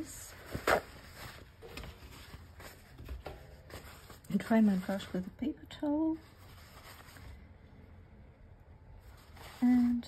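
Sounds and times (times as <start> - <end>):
paper towel rustling: 0.0 - 7.6, 9.0 - 10.0.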